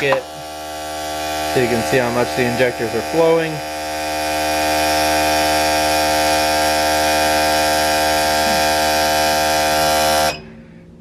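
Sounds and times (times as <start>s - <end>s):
fuel injectors buzzing: 0.0s - 10.8s.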